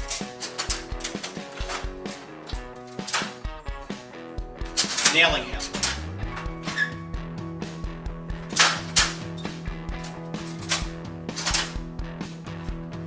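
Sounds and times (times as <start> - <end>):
sheet metal brake clacking: 0.0 - 3.4, 4.6 - 7.0, 8.5 - 11.8
background music: 0.0 - 13.0.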